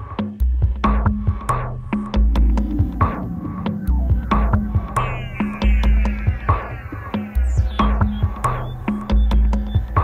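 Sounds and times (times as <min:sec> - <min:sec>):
deep synth bass: 0:00.8 - 0:09.8.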